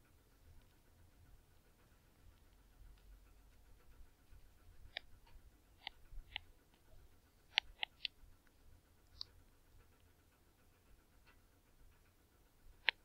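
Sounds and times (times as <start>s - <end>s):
low room hum: 0.0s - 13.0s
clicks and taps of drawing: 5.8s - 6.8s, 7.5s - 8.2s.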